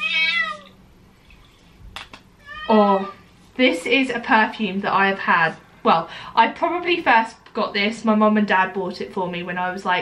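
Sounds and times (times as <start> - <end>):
cat meowing: 0.0 - 0.8, 2.4 - 3.3.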